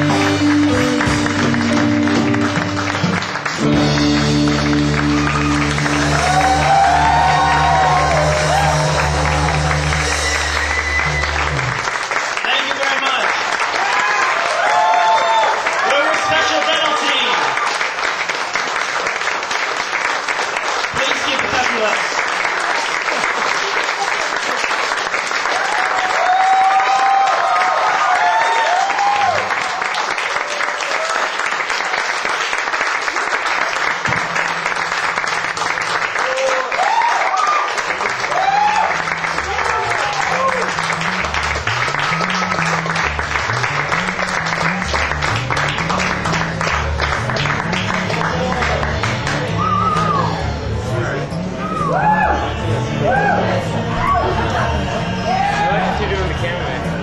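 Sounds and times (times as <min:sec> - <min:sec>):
low bass notes: 0:00.0 - 0:12.0, 0:38.4 - 0:57.0
audience applauding: 0:00.0 - 0:57.0
shouts and whoops: 0:05.2 - 0:09.6, 0:13.7 - 0:17.6, 0:25.5 - 0:31.3, 0:36.2 - 0:40.7, 0:49.5 - 0:50.6, 0:51.6 - 0:54.4, 0:55.2 - 0:56.0.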